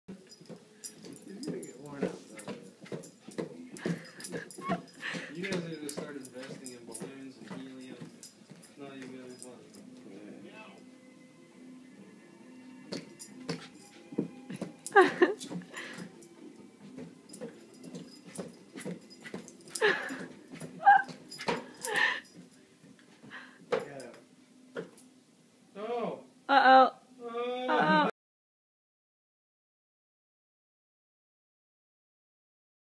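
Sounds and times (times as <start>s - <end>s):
television talk: 1.0s - 16.0s
small dog whimpering: 4.6s - 4.9s, 20.8s - 21.2s.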